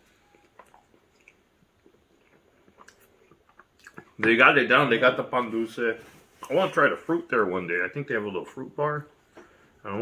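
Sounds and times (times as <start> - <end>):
chewing food: 0.1 - 4.2.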